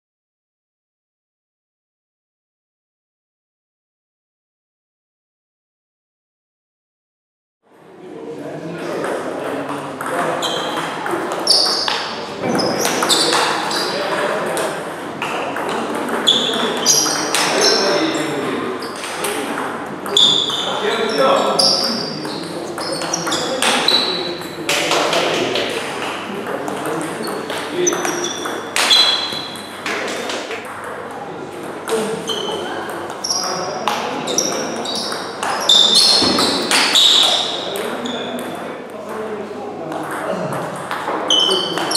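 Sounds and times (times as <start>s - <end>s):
table tennis balls clicking: 9.0s - 18.3s, 21.8s - 38.5s.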